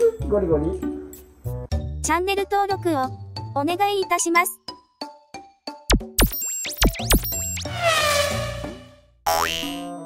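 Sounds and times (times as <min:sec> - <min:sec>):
quick rising sweep: 0:06.8 - 0:09.0.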